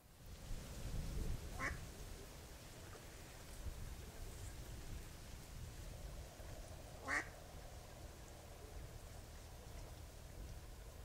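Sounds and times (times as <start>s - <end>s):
duck quacking: 7.0s - 7.3s.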